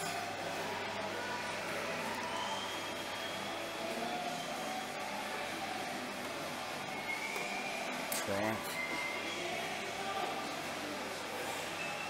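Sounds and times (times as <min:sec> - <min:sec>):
faint background music: 0:00.0 - 0:12.0
hum and murmur of room: 0:00.0 - 0:12.0.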